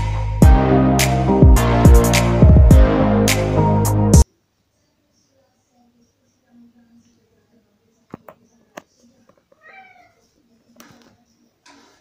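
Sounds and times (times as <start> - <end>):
cat meowing: 9.5 - 10.3.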